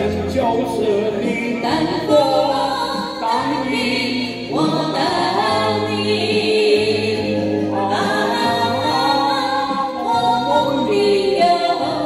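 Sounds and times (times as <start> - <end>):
man and woman singing duet: 0.0 - 12.0.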